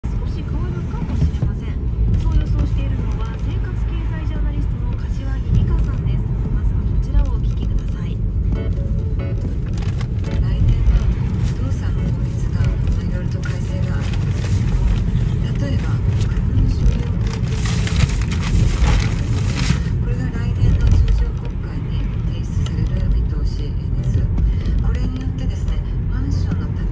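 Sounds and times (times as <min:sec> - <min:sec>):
faint music: 0:00.0 - 0:26.9
road and engine rumble inside car: 0:00.0 - 0:26.9.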